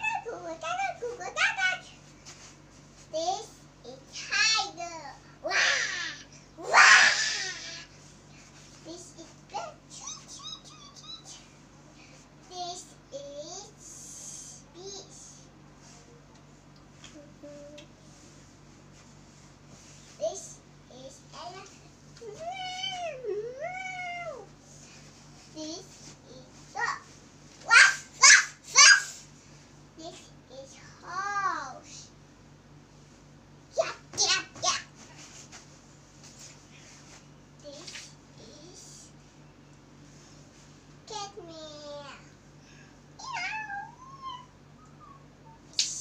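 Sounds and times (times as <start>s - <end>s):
child meowing like a cat: 22.2s - 24.5s, 43.2s - 45.3s
cat meowing: 43.2s - 45.2s.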